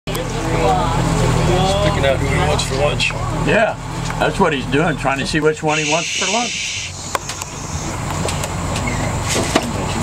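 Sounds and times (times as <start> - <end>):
people talking: 0.1 - 6.8
boat engine humming: 0.1 - 10.0.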